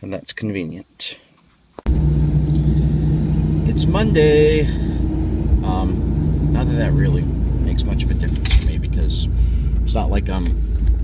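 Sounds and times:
car engine and road rumble: 1.9 - 11.0.

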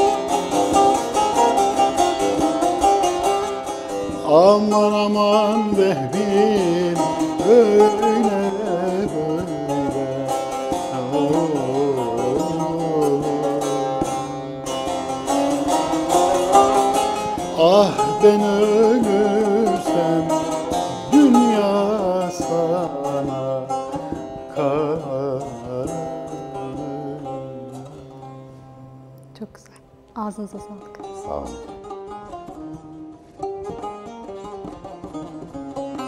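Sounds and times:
strummed long-necked lute: 0.0 - 36.0
man singing: 4.1 - 14.5, 15.5 - 28.5.

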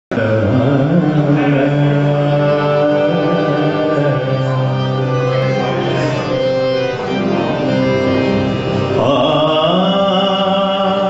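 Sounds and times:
man singing long note: 0.1 - 6.3, 8.4 - 11.0.

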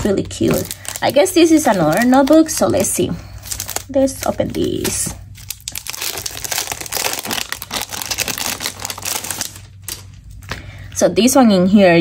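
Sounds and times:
packaging crinkling: 0.0 - 10.8.

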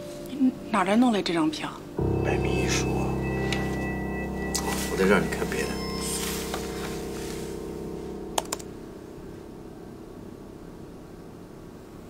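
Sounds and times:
low music drone: 2.0 - 11.6.

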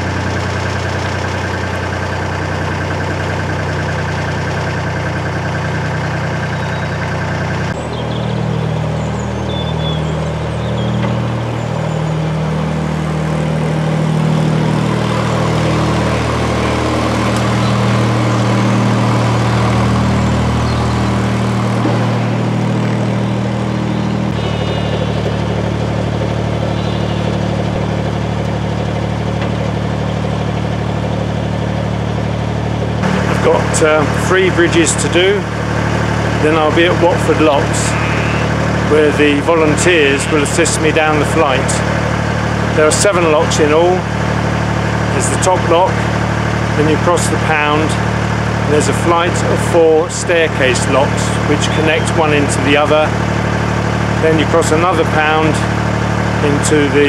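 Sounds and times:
diesel boat engine running: 0.0 - 57.0.

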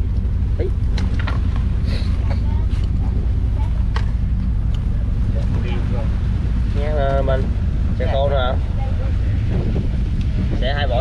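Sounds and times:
boat engine droning: 0.0 - 11.0.

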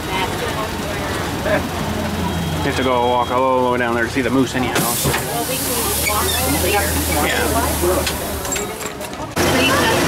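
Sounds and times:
compressed air hissing: 4.8 - 8.4.

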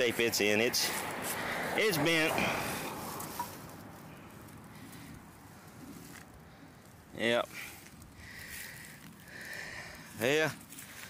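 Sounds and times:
soft breaths through nose: 2.4 - 11.0.

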